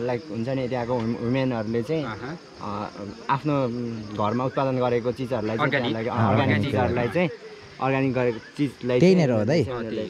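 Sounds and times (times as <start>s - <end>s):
men talking: 0.0s - 10.0s.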